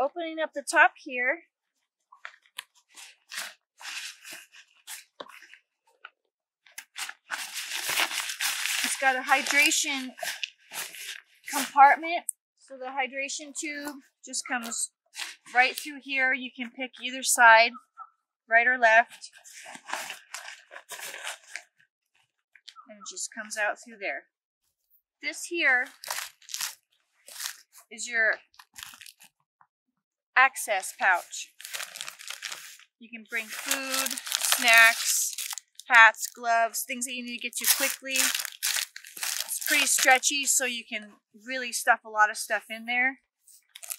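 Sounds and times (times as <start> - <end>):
nylon fabric rustling: 2.8 - 5.6, 6.8 - 12.0, 19.3 - 21.6, 25.7 - 27.9, 28.6 - 29.3, 30.6 - 36.6, 37.3 - 40.8, 43.5 - 43.9
plastic reservoir crinkling: 6.7 - 11.8, 19.4 - 21.6, 25.8 - 27.8, 28.5 - 29.3, 30.8 - 36.4, 37.2 - 40.7, 43.6 - 43.9.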